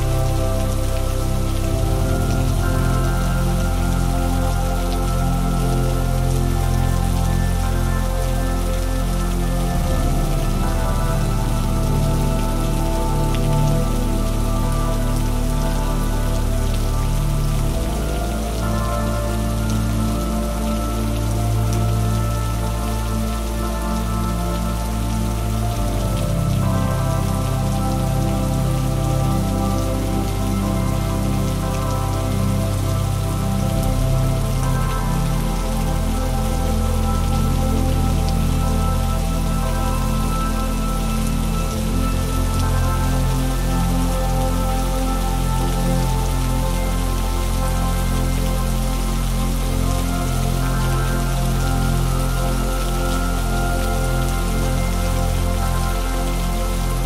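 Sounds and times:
slow music of sustained chords: 0.0s - 57.0s
steady rain falling: 0.0s - 57.0s.

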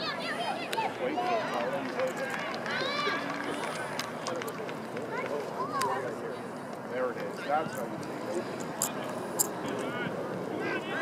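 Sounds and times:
faint voices: 0.0s - 11.0s
outdoor background noise: 0.0s - 11.0s.

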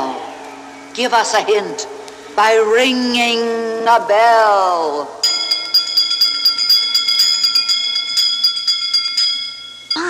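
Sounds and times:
bell ringing rapidly: 5.2s - 10.0s.

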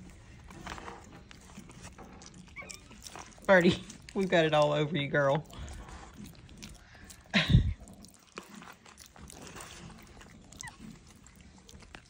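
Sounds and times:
monkeys smacking wet mouths: 5.4s - 12.0s.

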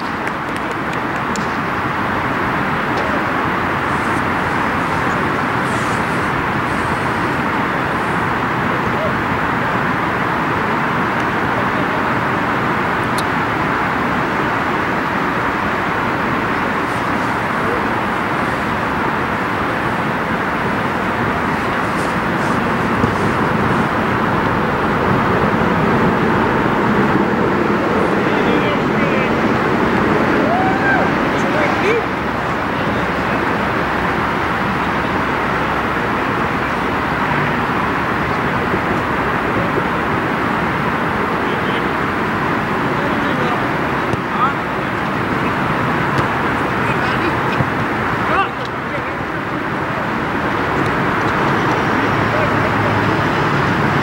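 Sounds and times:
road traffic roar: 0.0s - 54.0s.

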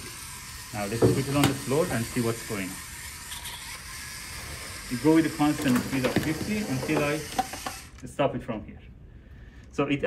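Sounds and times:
robot motors whirring: 0.0s - 8.0s.

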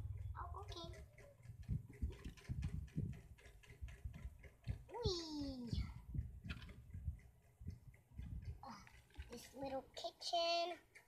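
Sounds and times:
plastic toys clicking on table: 0.6s - 6.9s, 8.0s - 11.0s.

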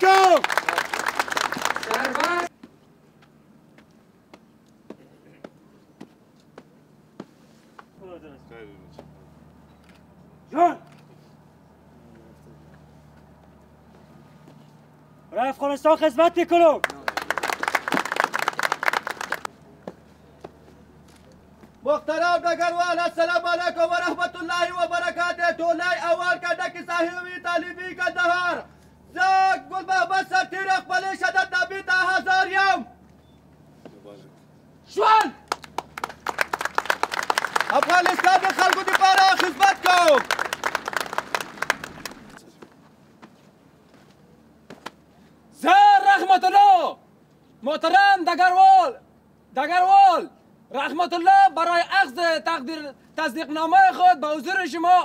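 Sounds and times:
people applauding: 0.0s - 2.5s, 16.8s - 19.5s, 35.2s - 42.4s.

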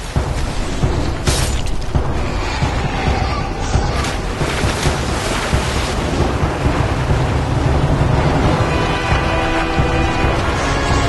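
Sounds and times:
sea water rushing and splashing: 0.0s - 11.0s.

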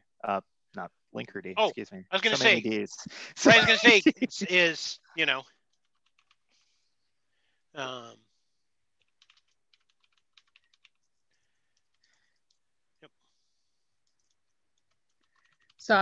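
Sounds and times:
computer keyboard typing: 5.6s - 6.8s, 9.0s - 12.6s, 14.0s - 16.0s.

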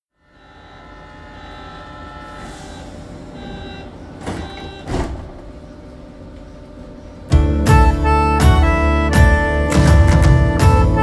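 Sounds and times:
thin high whine: 0.1s - 5.1s
gondola cabin rumble: 0.3s - 9.0s.

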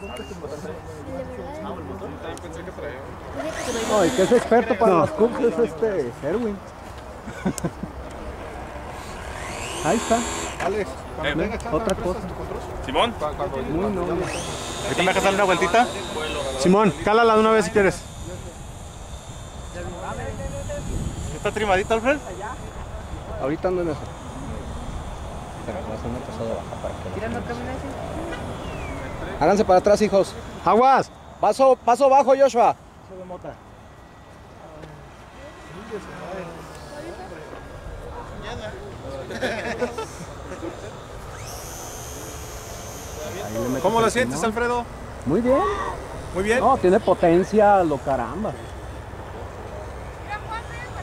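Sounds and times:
distant model airplane motor whine: 0.0s - 6.5s, 7.5s - 51.0s
wind rumbling on microphone: 18.5s - 22.0s
man talking: 43.2s - 48.6s.

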